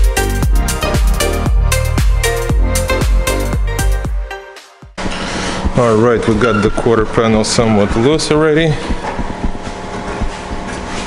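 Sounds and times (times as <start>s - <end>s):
steady hum: 5.0s - 11.0s.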